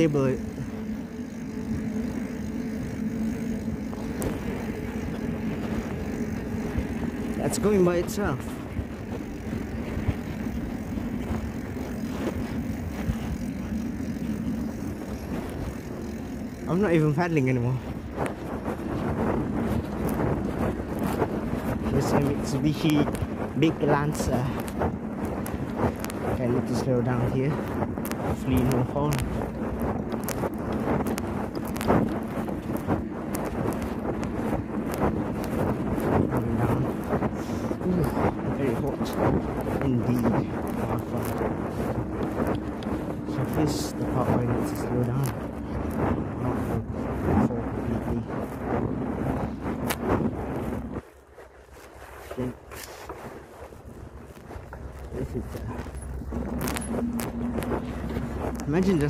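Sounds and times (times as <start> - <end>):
fabric rubbing on microphone: 0.0 - 59.0
wind buffeting microphone: 0.0 - 59.0.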